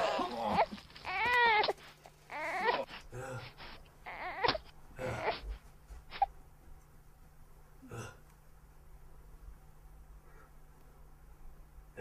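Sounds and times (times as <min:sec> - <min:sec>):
high-pitched wailing cries: 0:00.0 - 0:02.9, 0:04.0 - 0:05.4.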